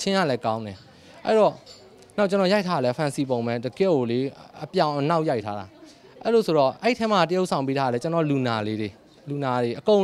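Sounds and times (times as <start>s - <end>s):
man talking: 2.2s - 10.0s.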